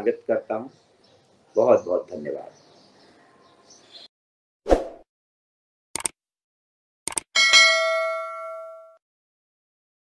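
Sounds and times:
mouse double click: 0:06.0 - 0:06.2
notification bell: 0:07.4 - 0:09.0.

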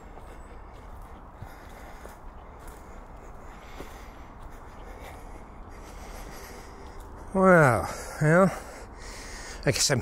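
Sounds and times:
footsteps on dry leaves: 0:00.0 - 0:07.5
steady low rumble: 0:00.0 - 0:09.7.

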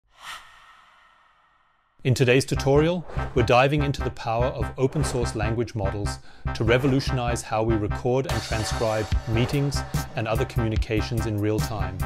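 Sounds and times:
soft breathy whoosh: 0:00.0 - 0:02.0.

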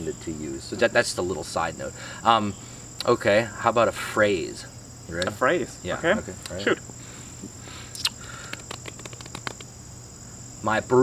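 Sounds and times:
insects chirring: 0:00.0 - 0:11.0
faint clicks: 0:07.9 - 0:09.7.

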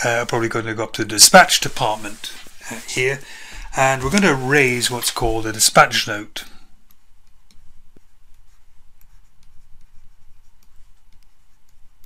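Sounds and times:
pen writing on paper: 0:07.2 - 0:11.9.

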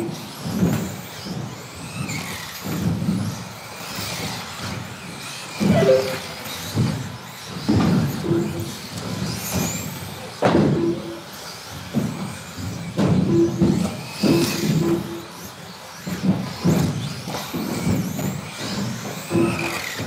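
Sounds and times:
rc car motors whining: 0:00.0 - 0:05.7, 0:11.0 - 0:20.0
rc cars thumping on track: 0:00.0 - 0:05.7, 0:06.3 - 0:20.0.

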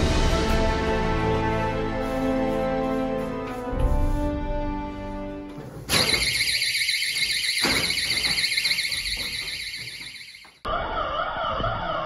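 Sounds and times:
shrill pulsing alarm: 0:05.9 - 0:11.0.

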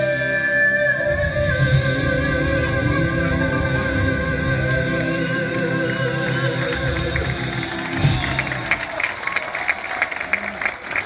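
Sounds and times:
live band playing: 0:00.0 - 0:10.4
audience applause: 0:05.1 - 0:11.0.

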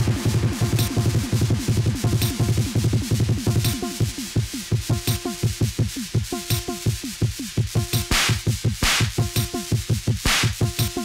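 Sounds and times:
electronic music with drum machines: 0:00.0 - 0:11.0.

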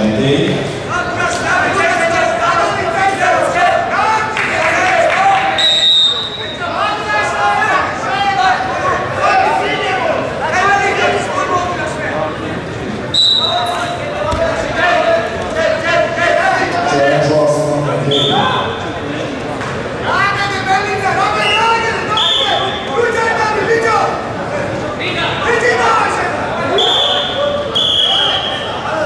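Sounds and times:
hall background noise: 0:00.0 - 0:29.0
referee's whistle blast: 0:05.6 - 0:06.6, 0:13.2 - 0:13.9, 0:18.1 - 0:18.7, 0:22.2 - 0:22.8, 0:26.7 - 0:28.8
long high whistle tones: 0:26.7 - 0:28.8.

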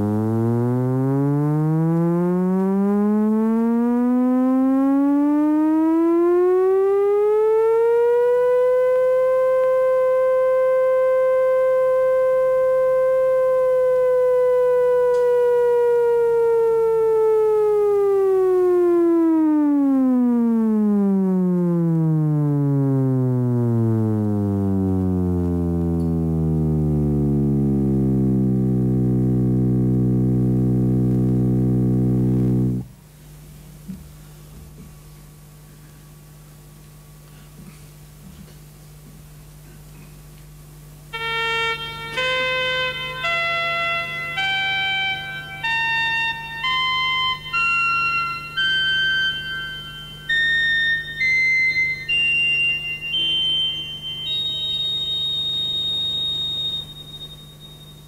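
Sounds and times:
electronic tone gliding in pitch: 0:00.0 - 0:32.9, 0:41.2 - 0:58.0.

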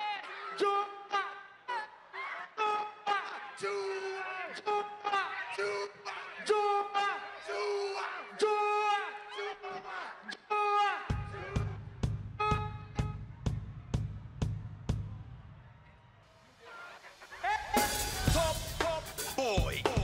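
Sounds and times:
drum beat: 0:11.1 - 0:15.5, 0:17.3 - 0:20.0
live afrobeats music: 0:16.6 - 0:20.0.

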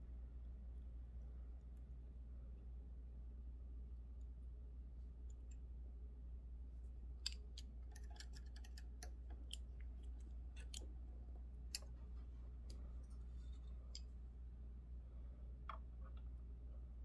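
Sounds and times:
low steady hum: 0:00.0 - 0:17.0
small metallic clicks and taps: 0:07.2 - 0:10.9.

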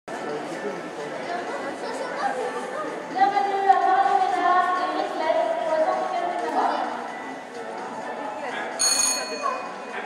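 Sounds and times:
voices in large hall: 0:00.1 - 0:10.0.

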